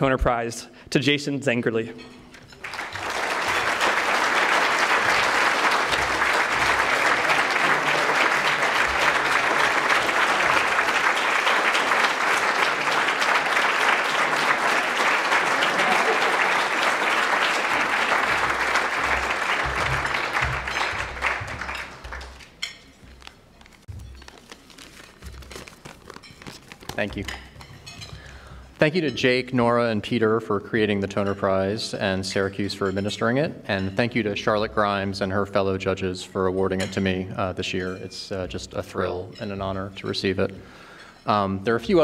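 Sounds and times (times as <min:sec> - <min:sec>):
audience applauding: 0:02.6 - 0:22.6.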